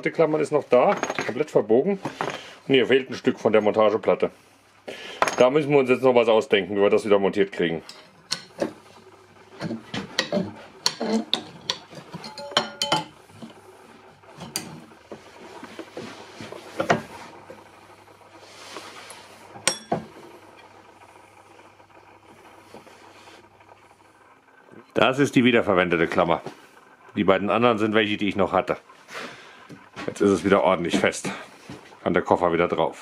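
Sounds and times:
metallic clinks and knocks: 12.1s - 13.2s.

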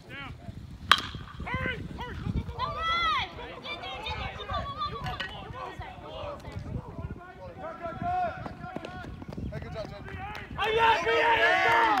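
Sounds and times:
people shouting and cheering: 1.4s - 12.0s.

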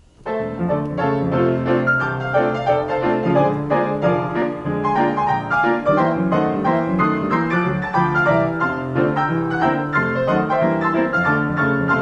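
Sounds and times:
player piano playing: 0.0s - 12.0s.

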